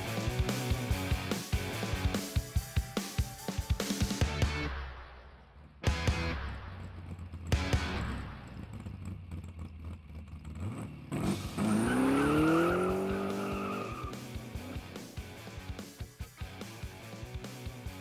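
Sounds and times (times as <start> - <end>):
car engine revving up: 5.9 - 15.9.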